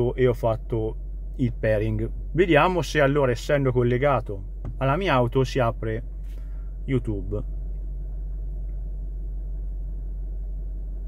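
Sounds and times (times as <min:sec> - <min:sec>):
car cabin rumble: 0:00.0 - 0:11.0.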